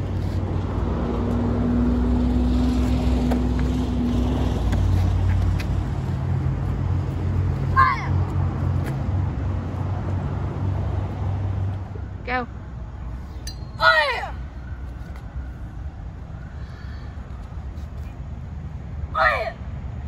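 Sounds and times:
low engine hum: 0.0 - 13.4
high-pitched shout: 7.8 - 8.2, 13.8 - 14.5, 19.2 - 19.6.

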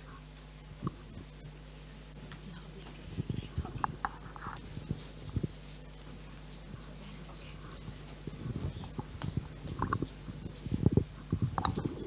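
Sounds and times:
microphone handling thumps: 3.1 - 6.2, 7.8 - 12.0
sharp microphone clicks: 7.7 - 12.0.

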